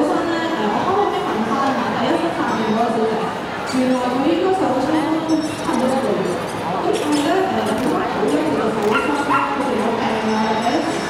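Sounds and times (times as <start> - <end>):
crowd chatter: 0.0 - 11.0
dog barking high-pitched: 8.6 - 9.7.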